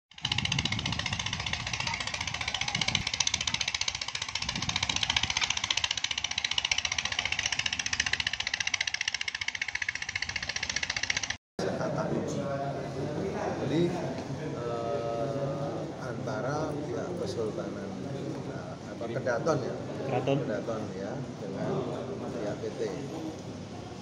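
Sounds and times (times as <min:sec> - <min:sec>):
engine running with rapid pulse: 0:00.1 - 0:11.4.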